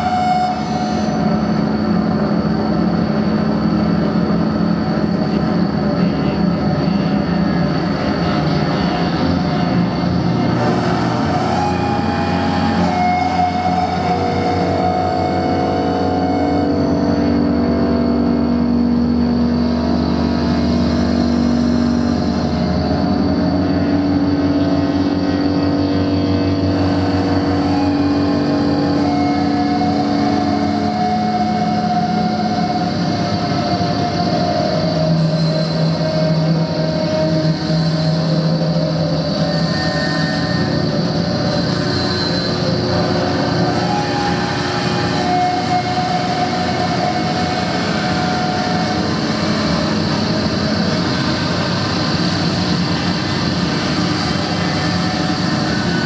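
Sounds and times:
dense electronic drone: 0.0s - 56.0s.

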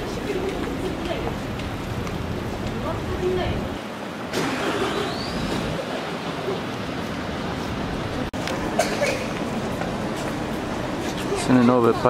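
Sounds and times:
urban noise: 0.0s - 12.0s
voices of passers-by: 0.0s - 12.0s.

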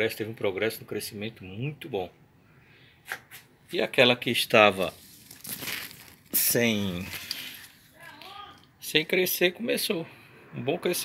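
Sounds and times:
man speaking: 3.7s - 5.0s, 6.3s - 7.4s, 8.8s - 11.0s.

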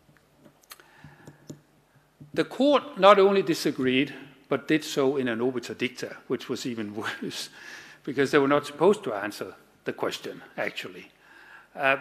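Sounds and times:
person speaking: 11.8s - 12.0s.

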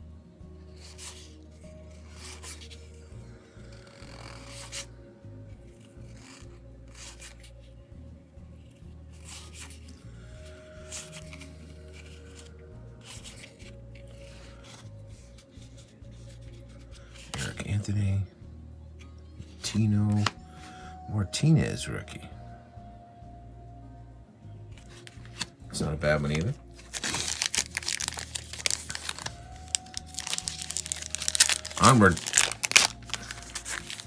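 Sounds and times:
quiet background music: 0.0s - 34.0s
cardboard cards swishing: 26.3s - 34.0s.

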